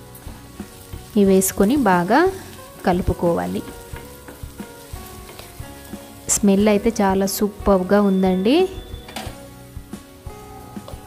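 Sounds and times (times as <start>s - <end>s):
onions sizzling in oil: 0.0s - 11.0s
wooden spatula scraping a pan: 3.6s - 6.3s
woman speaking: 6.3s - 8.8s.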